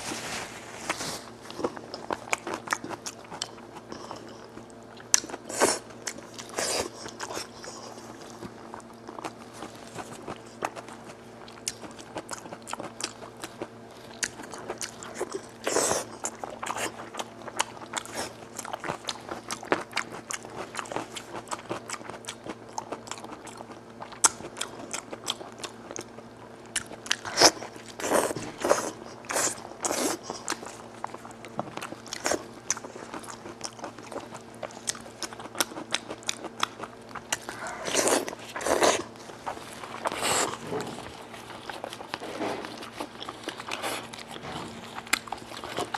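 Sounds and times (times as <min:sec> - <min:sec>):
close chewing with mouth clicks: 0:00.9 - 0:45.9.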